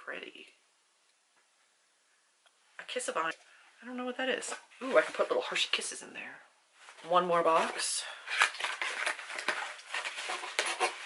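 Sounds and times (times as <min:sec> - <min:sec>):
cardboard box rustling: 0:07.5 - 0:11.0.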